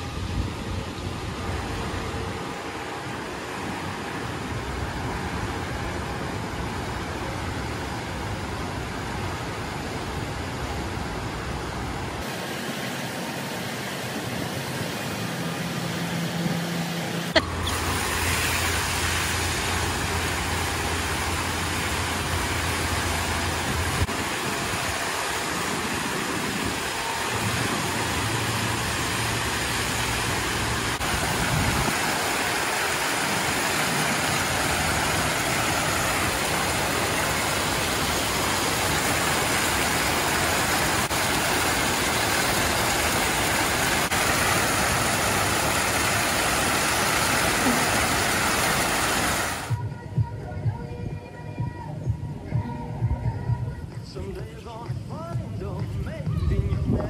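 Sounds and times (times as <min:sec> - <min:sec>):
water jets splashing into pool: 0:00.0 - 0:49.8.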